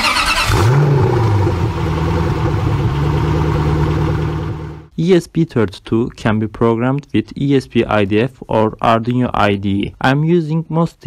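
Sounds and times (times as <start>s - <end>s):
vehicle engine starting and idling: 0.0s - 4.9s.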